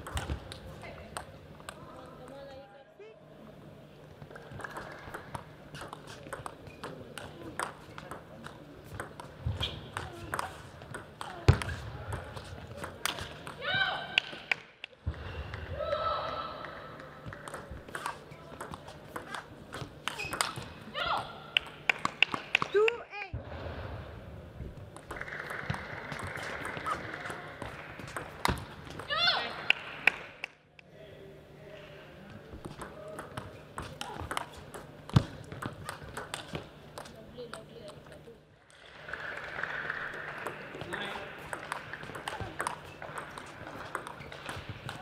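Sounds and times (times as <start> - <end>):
table tennis ball clicking: 40.4 - 45.0.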